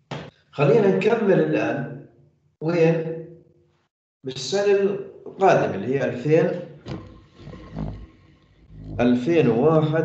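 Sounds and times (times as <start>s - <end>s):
man speaking: 0.6s - 1.8s, 2.6s - 3.1s, 4.2s - 6.6s, 9.0s - 10.0s
man humming: 8.8s - 9.5s.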